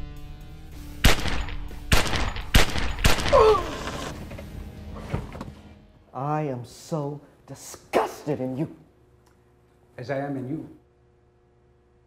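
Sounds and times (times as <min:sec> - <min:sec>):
loud gunshots: 0:01.0 - 0:03.5.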